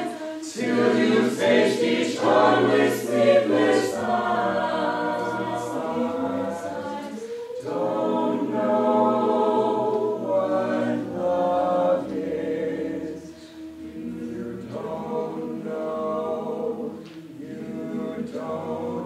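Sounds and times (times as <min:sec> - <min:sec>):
choir singing a cappella: 0:00.0 - 0:19.0.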